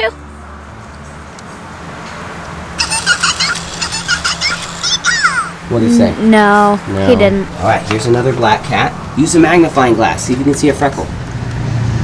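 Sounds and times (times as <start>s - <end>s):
high-pitched electronic toy voice: 2.8s - 6.2s.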